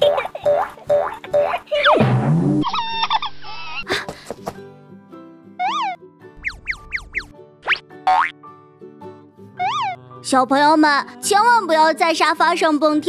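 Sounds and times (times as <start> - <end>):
children's background music: 0.0 - 2.2, 5.2 - 13.0.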